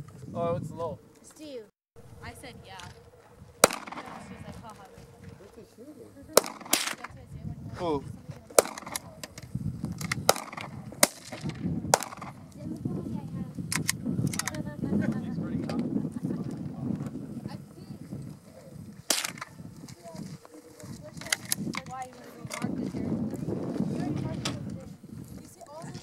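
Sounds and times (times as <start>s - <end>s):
faint voices: 2.1s - 9.6s, 12.3s - 26.0s
pistol shots: 3.6s - 4.4s, 6.4s - 7.1s, 8.6s - 9.1s, 10.2s - 12.4s, 19.1s - 19.5s.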